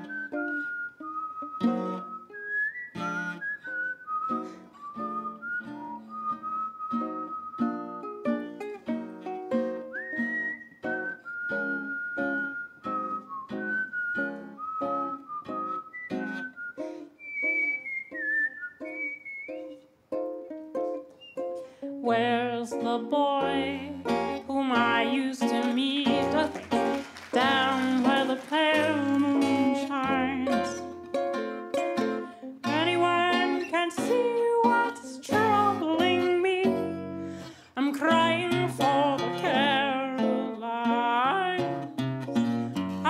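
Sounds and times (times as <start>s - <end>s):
person whistling a melody: 0.0s - 8.2s, 9.7s - 19.9s
strummed acoustic strings: 0.0s - 43.0s.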